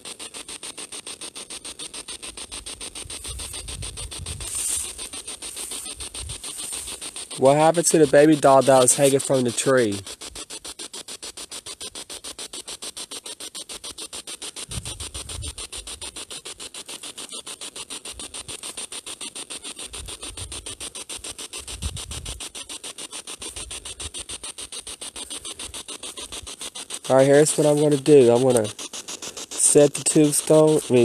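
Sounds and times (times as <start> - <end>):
pulsing radio static: 0.0 - 31.0.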